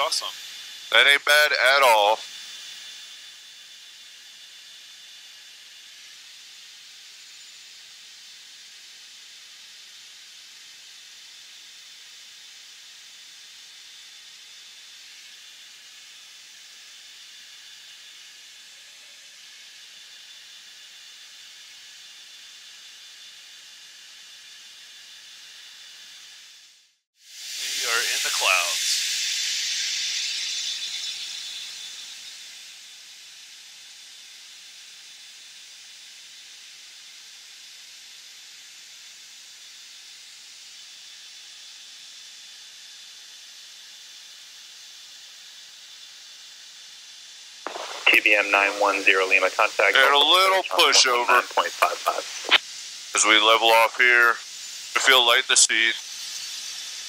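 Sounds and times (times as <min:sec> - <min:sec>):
intercom hiss: 0:00.0 - 0:02.2, 0:27.6 - 0:29.0, 0:47.7 - 0:52.6, 0:53.2 - 0:56.0
faint high whine: 0:00.0 - 0:08.8, 0:27.6 - 0:29.0, 0:47.7 - 0:52.6, 0:53.2 - 0:57.0
squeaky voice-like fragment: 0:48.0 - 0:52.6, 0:53.2 - 0:54.4.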